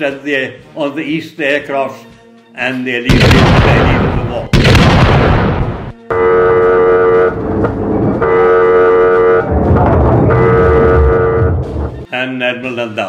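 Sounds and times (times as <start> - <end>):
gunfire-like burst: 3.1 - 6.0
noisy background: 3.1 - 12.4
horn blasts: 6.0 - 11.8.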